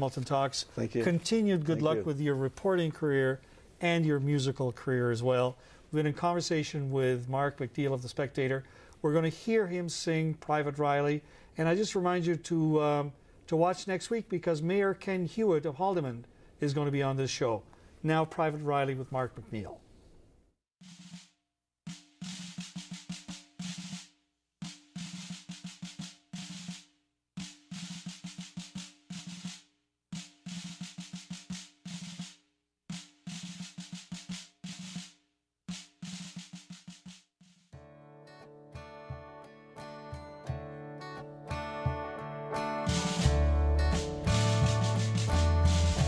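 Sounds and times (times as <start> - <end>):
snare drum marching cadence: 20.8 - 21.3, 21.9 - 37.3, 42.9 - 43.4, 44.0 - 46.0
acoustic guitar: 37.8 - 46.0
sustained instrumental chords: 39.2 - 46.0.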